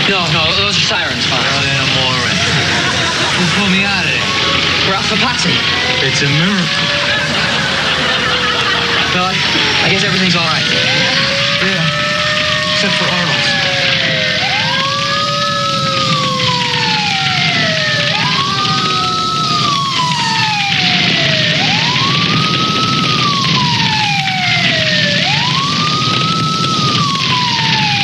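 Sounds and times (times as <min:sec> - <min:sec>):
emergency vehicle sirens wailing: 0:00.0 - 0:28.0
higher siren sweeping: 0:00.0 - 0:28.0.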